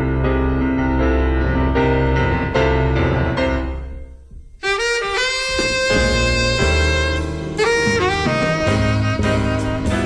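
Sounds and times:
double bass: 0:00.0 - 0:10.0
piano chords: 0:00.0 - 0:10.0
saxophone long notes: 0:04.6 - 0:10.0.

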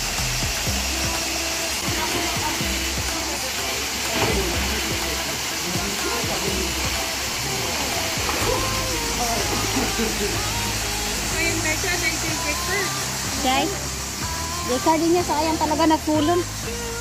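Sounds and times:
music: 0:00.0 - 0:17.0
small waterfall pouring into pool: 0:00.0 - 0:17.0.

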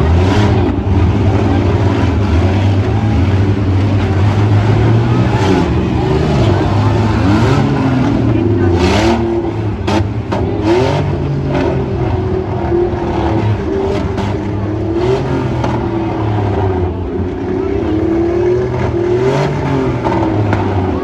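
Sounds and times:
car engines revving: 0:00.0 - 0:21.0.

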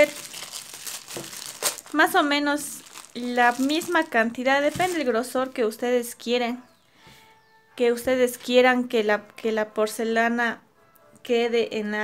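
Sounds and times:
plastic bag crinkling: 0:00.0 - 0:05.5.

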